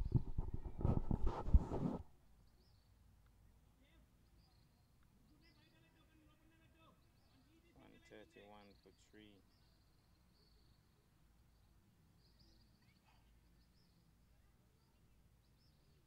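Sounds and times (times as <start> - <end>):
rumbling crackling microphone noise: 0.0 - 2.1
faint distant calls and chirps: 0.0 - 16.0.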